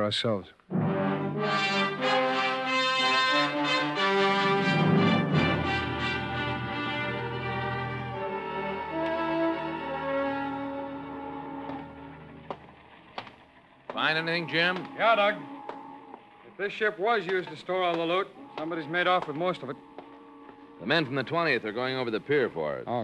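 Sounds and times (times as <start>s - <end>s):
orchestral music with brass and strings: 0.7s - 12.9s.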